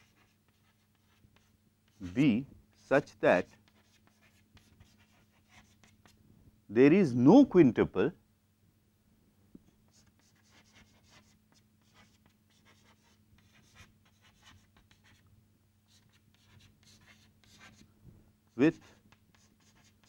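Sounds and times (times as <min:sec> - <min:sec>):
chalk scratching on blackboard: 0:00.0 - 0:06.2, 0:09.9 - 0:15.2, 0:15.9 - 0:17.9, 0:18.5 - 0:20.0
faint low hum: 0:00.0 - 0:20.0.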